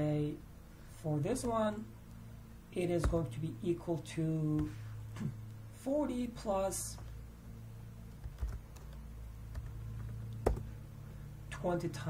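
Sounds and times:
keyboard and mouse clicks: 9.6 - 10.7.

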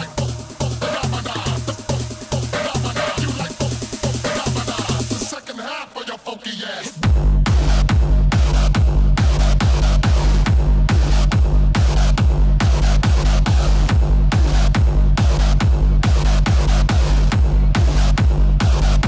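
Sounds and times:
heavy bassline: 0.0 - 6.0, 6.8 - 19.0
techno track: 0.0 - 19.0
kick drum beats: 7.0 - 19.0.

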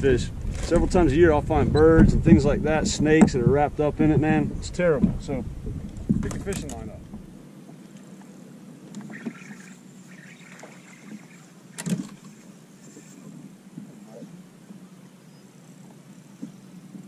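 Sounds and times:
boat low hum: 0.0 - 17.0.

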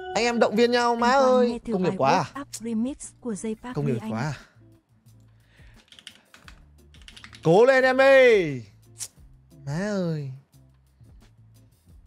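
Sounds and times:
keyboard typing: 5.8 - 7.5.

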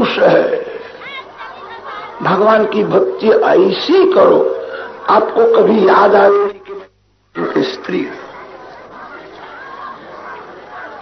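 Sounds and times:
murmur of audience chatter: 0.0 - 11.0.

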